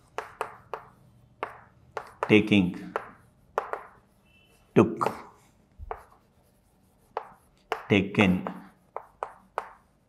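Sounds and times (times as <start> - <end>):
chalk tapping on chalkboard: 0.0 - 10.0.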